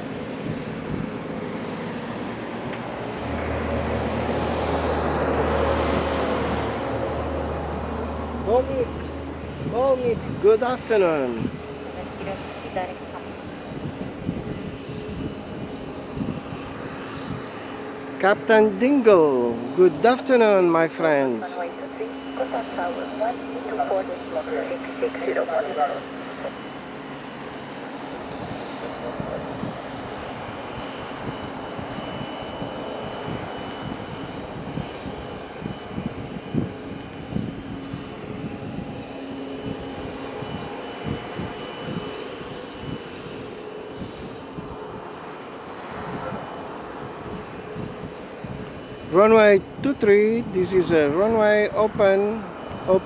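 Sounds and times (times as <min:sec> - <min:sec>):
jet engine whine: 0:00.0 - 0:53.0.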